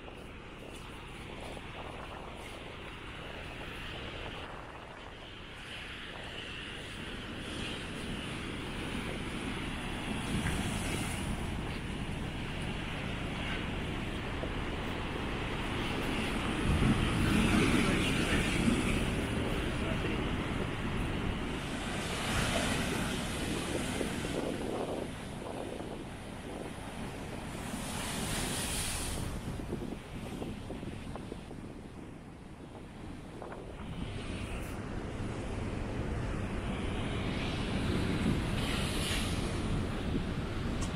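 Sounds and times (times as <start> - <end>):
wind buffeting microphone: 0.0 - 40.9
surf breaking on rocky shore: 2.4 - 32.0.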